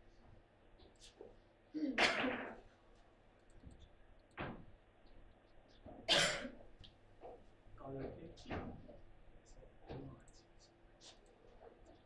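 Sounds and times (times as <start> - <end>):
person coughing: 1.8 - 2.6, 6.1 - 6.6.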